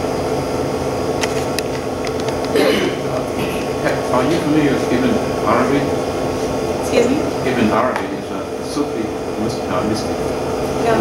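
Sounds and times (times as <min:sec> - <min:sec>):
steady mechanical hum: 0:00.0 - 0:11.0.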